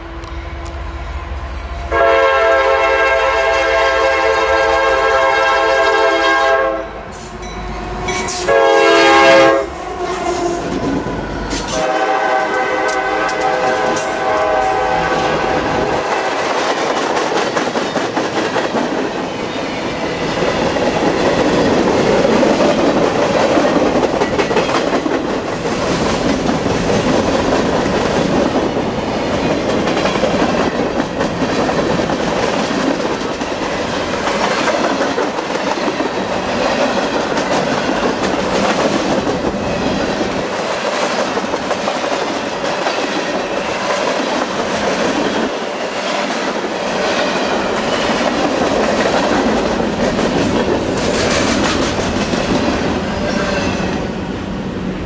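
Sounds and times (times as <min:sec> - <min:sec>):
train rumble: 0:00.0 - 0:55.0
train wheels clattering over rail joints: 0:20.1 - 0:52.9.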